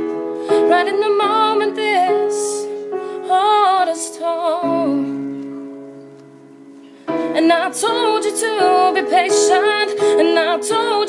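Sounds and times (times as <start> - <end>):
piano chords: 0.0 - 11.0
woman singing: 0.4 - 5.2, 7.2 - 11.0.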